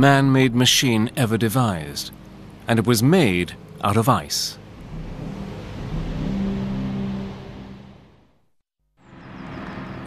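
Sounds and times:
steady engine drone: 0.0s - 8.4s
car driving past: 3.4s - 8.4s.

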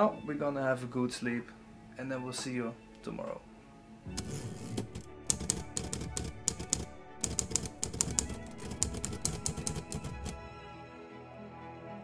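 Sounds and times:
background music: 0.0s - 12.0s
typewriter keystroke clicks: 4.2s - 10.4s.

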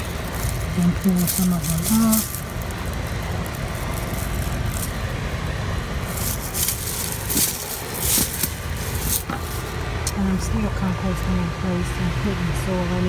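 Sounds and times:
lettuce stalks rustling and crackling: 0.0s - 10.1s.

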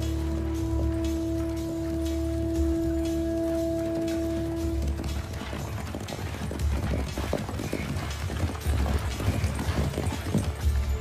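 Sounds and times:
film score sustained notes: 0.0s - 6.7s
horses galloping on dirt: 0.0s - 11.0s.

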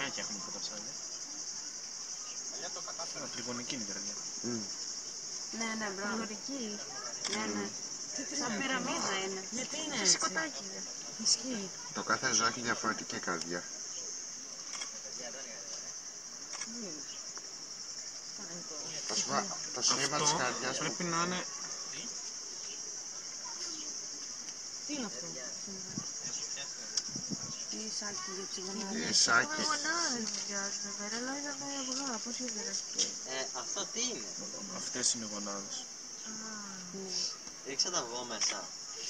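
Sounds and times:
cicadas chorus: 0.0s - 39.0s.

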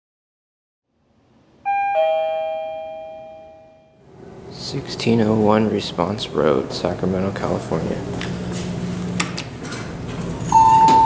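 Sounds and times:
two-note chime: 1.7s - 4.0s.

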